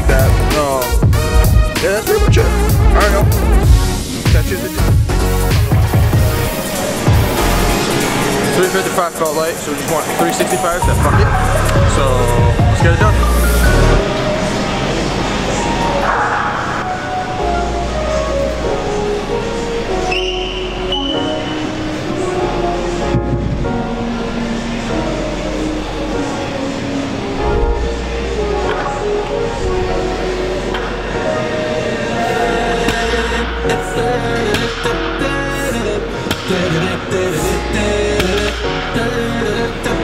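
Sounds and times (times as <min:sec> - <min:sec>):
background music with bass line: 0:00.0 - 0:40.0.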